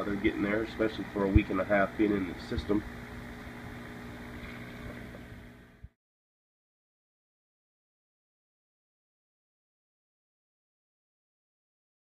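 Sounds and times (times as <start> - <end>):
air pump humming: 0.0 - 6.0.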